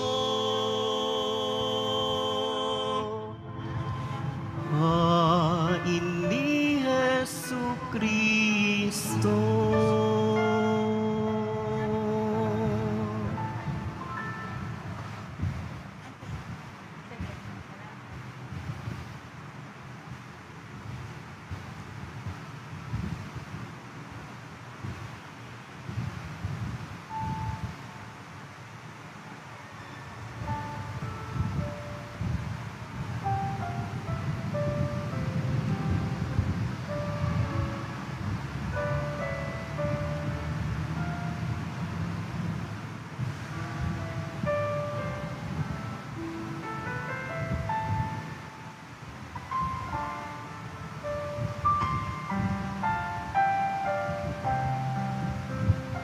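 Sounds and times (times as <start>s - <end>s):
low steady rumble: 0.0s - 28.8s, 30.4s - 56.0s
slow instrumental melody: 3.4s - 15.8s, 30.4s - 56.0s.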